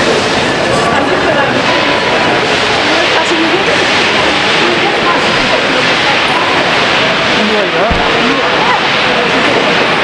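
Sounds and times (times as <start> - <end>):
crowd voices: 0.0 - 10.0
train coaches rolling on rails: 0.0 - 10.0.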